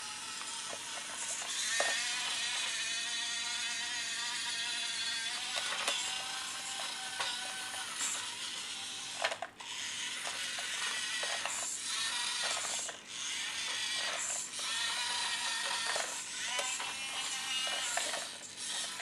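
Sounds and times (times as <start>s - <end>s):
toy tractor motor whirring: 0.0s - 19.0s
ratcheting gear chatter: 10.2s - 19.0s.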